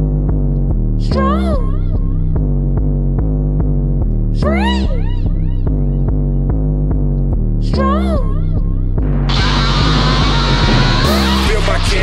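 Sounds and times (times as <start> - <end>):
instrumental rap beat: 0.0 - 12.0.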